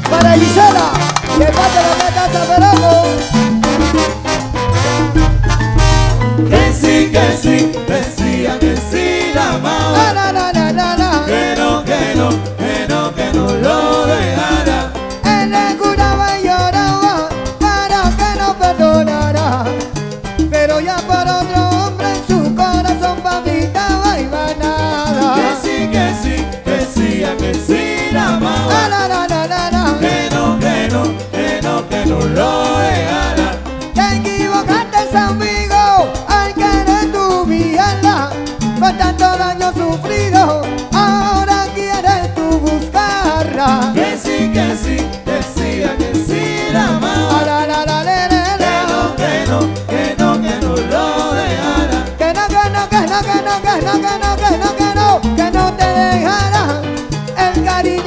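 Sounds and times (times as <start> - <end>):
digital piano montuno: 0.0 - 58.0
percussion: 0.0 - 58.0
repeating bass line: 0.0 - 58.0.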